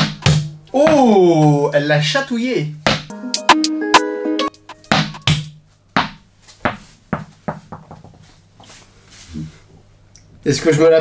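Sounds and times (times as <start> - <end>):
tennis ball bouncing on floor: 0.0 - 1.2, 2.8 - 3.1, 4.9 - 8.2.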